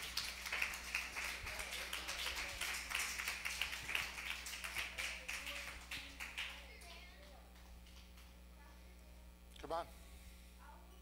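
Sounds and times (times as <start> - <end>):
congregation clapping: 0.0 - 8.4.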